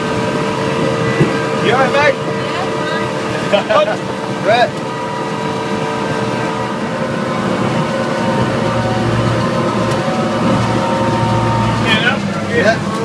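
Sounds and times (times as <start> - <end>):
boat engine running: 0.0 - 13.0.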